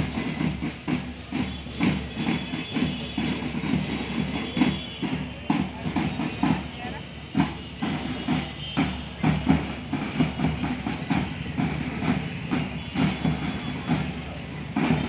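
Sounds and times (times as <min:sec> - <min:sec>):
marching drum beats: 0:00.0 - 0:15.0.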